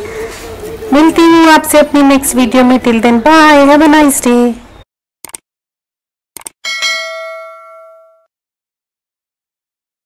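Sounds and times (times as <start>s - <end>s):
notification bell ding: 6.6s - 8.3s.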